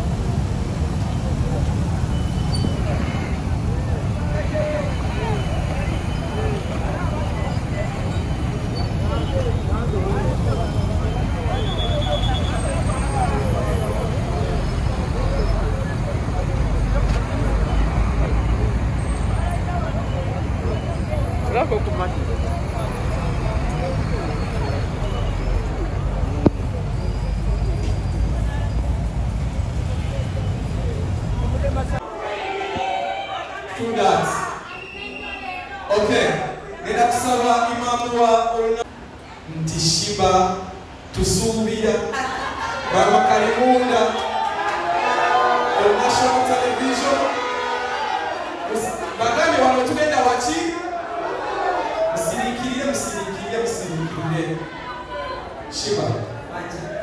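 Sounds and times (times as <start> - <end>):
motorcycle traffic rumble: 0.0 - 32.0
distant people talking: 0.0 - 57.0
people talking: 1.1 - 29.1.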